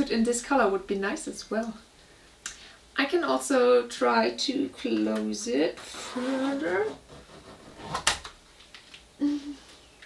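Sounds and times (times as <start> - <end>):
zipper rasp: 5.8 - 8.1.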